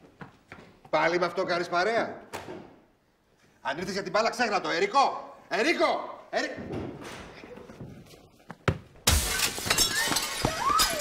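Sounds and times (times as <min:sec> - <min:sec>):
glass shattering: 0:09.0 - 0:11.0
broken glass shards tinkling: 0:09.1 - 0:11.0.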